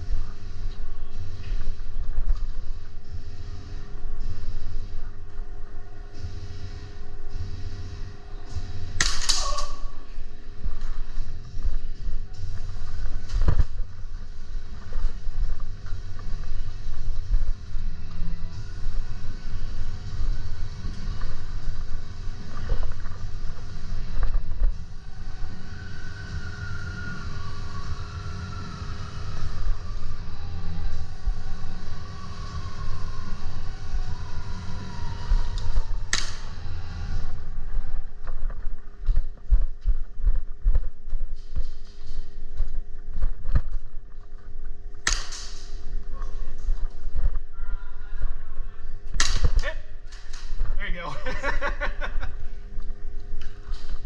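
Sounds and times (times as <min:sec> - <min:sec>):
steady hum: 0:00.0 - 0:54.0
sharp cracks: 0:09.0 - 0:10.0, 0:36.1 - 0:36.6, 0:45.0 - 0:45.8, 0:49.1 - 0:50.6.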